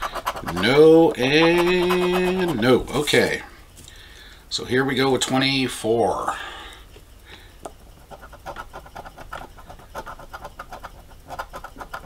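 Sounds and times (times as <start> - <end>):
coin scraping lottery ticket: 0.0 - 2.7, 8.1 - 12.0.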